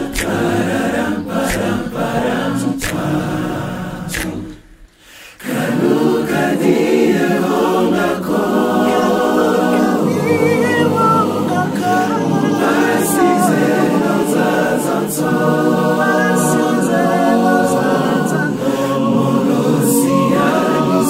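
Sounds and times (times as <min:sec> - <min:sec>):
male vocal group singing a cappella: 0:00.0 - 0:21.0.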